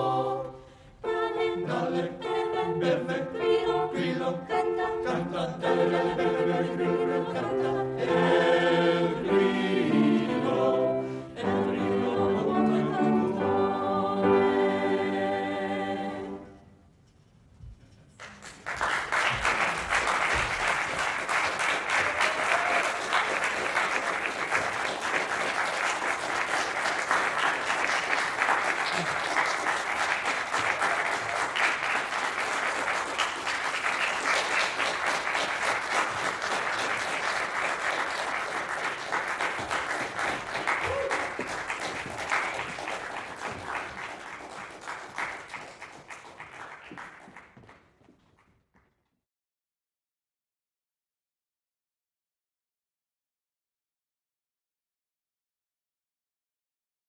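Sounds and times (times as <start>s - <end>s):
audience applauding: 18.2s - 48.5s.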